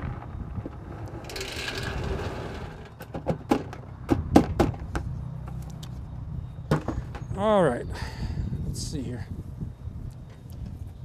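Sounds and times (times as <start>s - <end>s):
sharp knocks and clanks: 0.0s - 5.1s, 6.7s - 7.3s.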